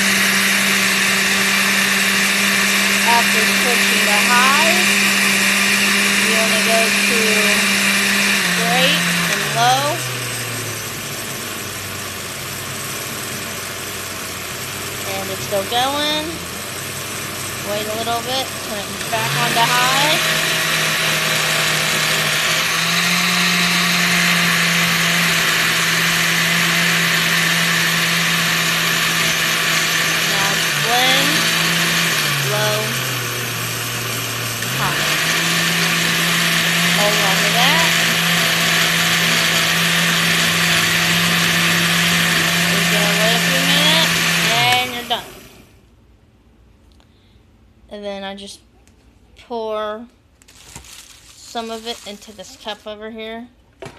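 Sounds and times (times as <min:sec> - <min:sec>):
blender motor running: 0:00.0 - 0:45.8, 0:50.5 - 0:52.8.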